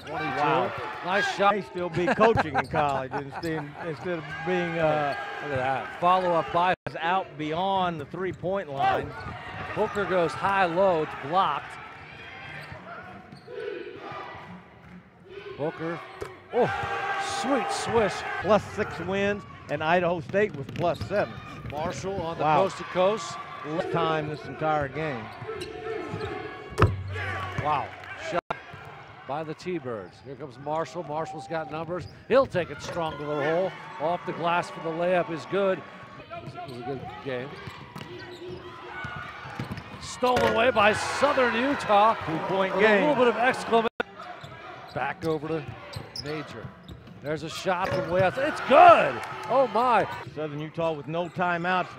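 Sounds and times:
faint crowd and player voices: 0:00.0 - 0:51.9.

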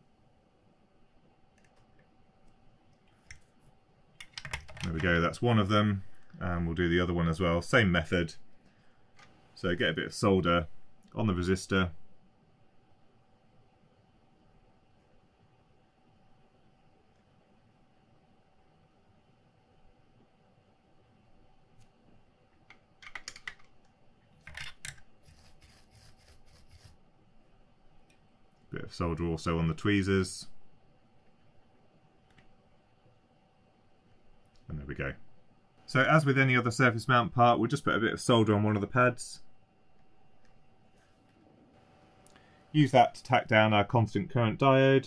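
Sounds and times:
man speaking: 0:04.8 - 0:08.4, 0:09.6 - 0:12.0, 0:28.7 - 0:30.6, 0:34.7 - 0:35.3, 0:35.9 - 0:39.5, 0:42.8 - 0:45.0
soldering tools clicking and rattling: 0:22.6 - 0:26.9.

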